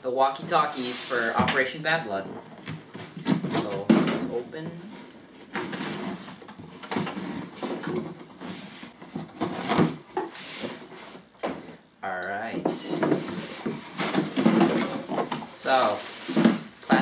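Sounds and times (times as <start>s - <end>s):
tape and cardboard tearing: 5.4s - 11.2s.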